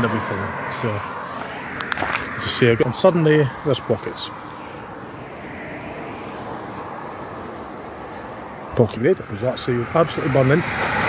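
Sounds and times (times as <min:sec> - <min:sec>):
vehicle passing on road: 0:00.0 - 0:11.0.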